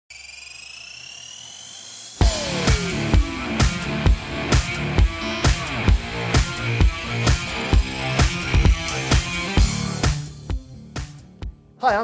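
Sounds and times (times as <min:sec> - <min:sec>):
synthesized rising tones: 0:00.1 - 0:10.4.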